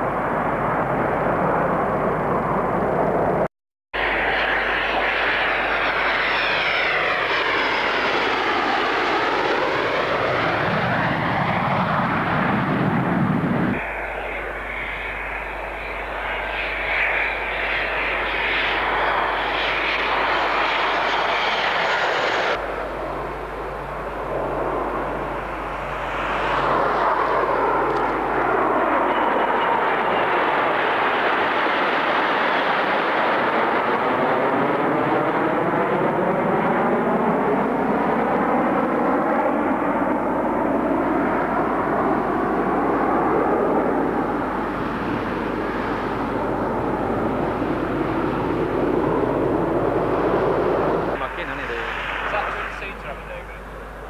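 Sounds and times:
fighter jets flying past: 0.0 - 54.0.

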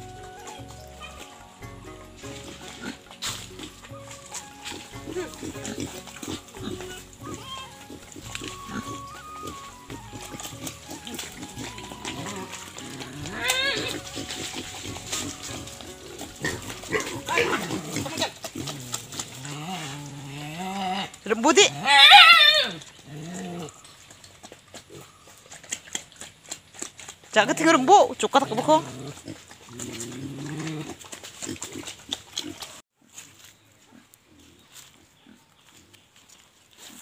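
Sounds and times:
pigs grunting and squealing: 0.0 - 32.8
long low wavering call: 7.1 - 16.0.

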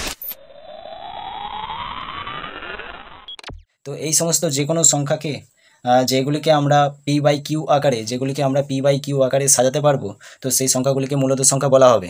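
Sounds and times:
synthetic rising sweep: 0.0 - 3.7.

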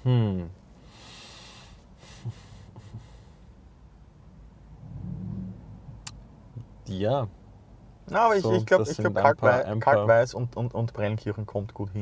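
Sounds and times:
loud low hum: 4.3 - 7.9.

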